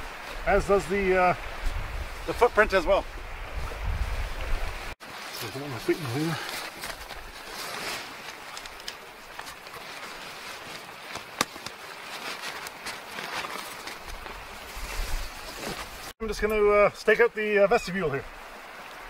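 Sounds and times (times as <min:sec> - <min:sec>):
nylon tent fabric rustling: 0:03.5 - 0:16.2.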